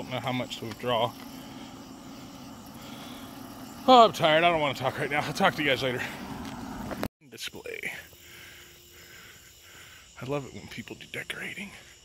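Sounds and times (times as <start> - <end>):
man speaking: 0.0 - 1.2, 3.8 - 6.2, 10.2 - 11.8
vehicle engine humming: 0.0 - 7.1.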